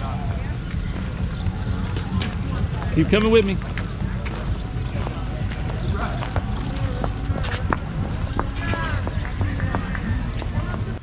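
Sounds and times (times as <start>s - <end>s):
faint voices: 0.0s - 11.0s
cycling shoe cleats clicking on pavement: 1.8s - 11.0s.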